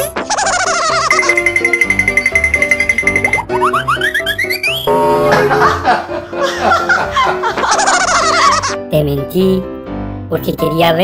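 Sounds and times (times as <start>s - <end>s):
bouncy repeated notes: 0.9s - 6.4s
held high tone: 4.4s - 6.1s.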